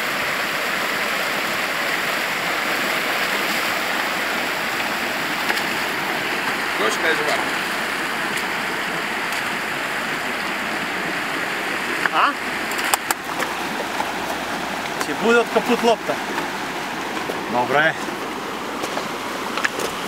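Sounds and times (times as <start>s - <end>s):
river rushing over stones: 0.0s - 20.0s.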